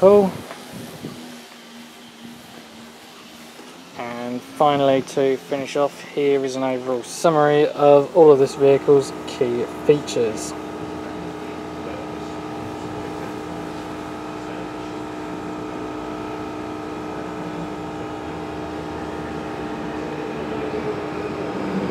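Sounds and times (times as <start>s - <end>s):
mechanical hum: 0.0s - 21.9s.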